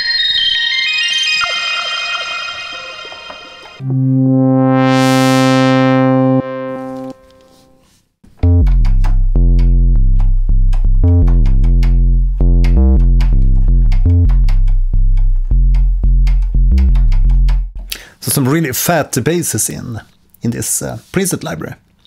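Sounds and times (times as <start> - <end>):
deep synth bass line: 3.8 - 7.5, 8.4 - 17.9
synth filter sweep: 3.8 - 7.7.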